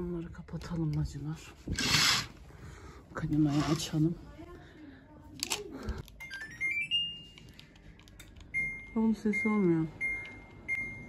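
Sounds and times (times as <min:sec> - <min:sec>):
air conditioner beep tones: 0:08.5 - 0:11.0.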